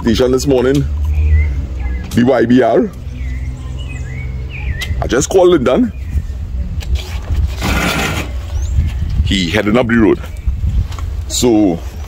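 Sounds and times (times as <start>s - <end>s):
scraping rattling noise: 6.8s - 8.6s.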